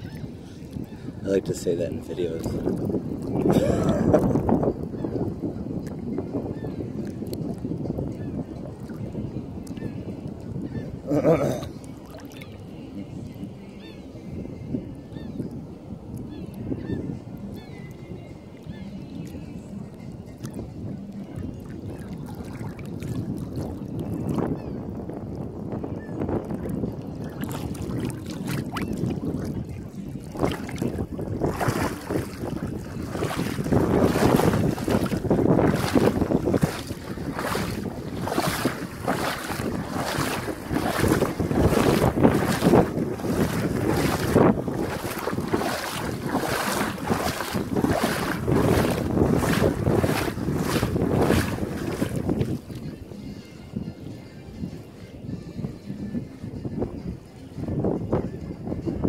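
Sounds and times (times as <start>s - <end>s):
wind on microphone: 0.0s - 59.0s
splashing steps in water: 21.9s - 23.7s, 27.3s - 29.5s, 30.2s - 52.8s.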